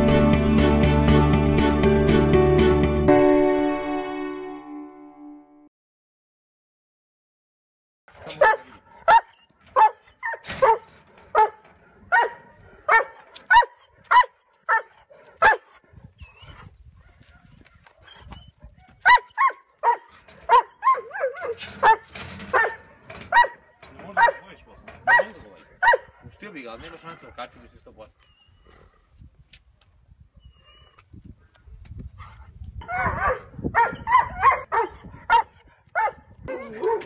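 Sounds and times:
dog barking sharply: 0:08.2 - 0:15.7, 0:19.0 - 0:23.6, 0:25.1 - 0:26.1, 0:32.9 - 0:36.2.

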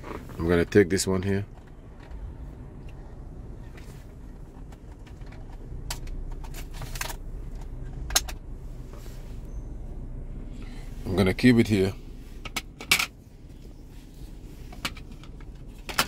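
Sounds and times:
low steady rumble: 0:00.0 - 0:16.0.

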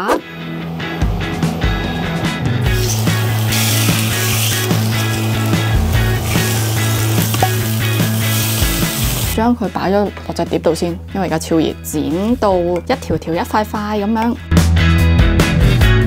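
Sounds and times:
background music: 0:00.0 - 0:16.0
chicken sizzling in frying pan: 0:02.7 - 0:09.4.

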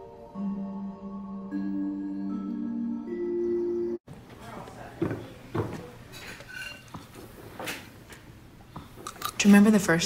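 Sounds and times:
forks clinking on plates: 0:06.1 - 0:06.9.

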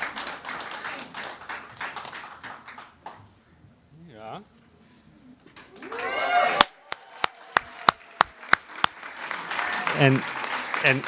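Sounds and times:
audience applause: 0:00.0 - 0:03.2, 0:05.6 - 0:11.0
loud hand claps close by: 0:06.5 - 0:11.0.

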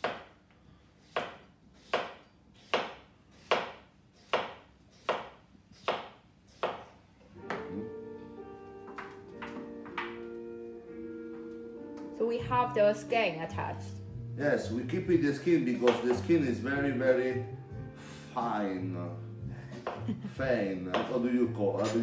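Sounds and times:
knife chopping on cutting board: 0:00.0 - 0:00.4, 0:01.0 - 0:06.9, 0:15.8 - 0:16.3, 0:19.8 - 0:20.1, 0:20.9 - 0:21.2
background music: 0:07.3 - 0:22.0.

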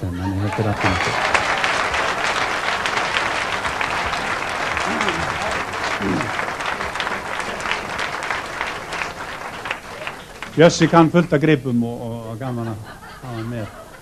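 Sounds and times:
audience applauding: 0:00.2 - 0:11.7.

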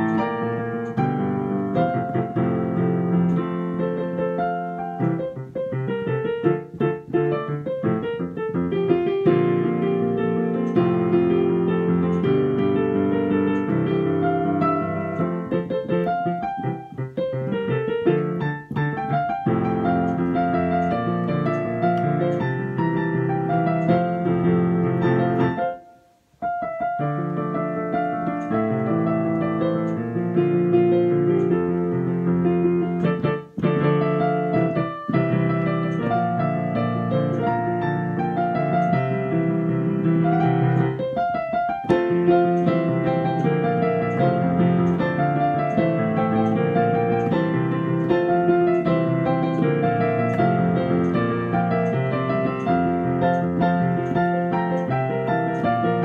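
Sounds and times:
digital piano playing: 0:00.0 - 0:56.0.

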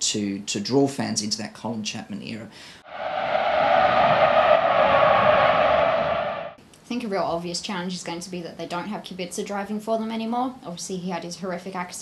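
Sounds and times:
racing car engine roar: 0:02.8 - 0:06.6.

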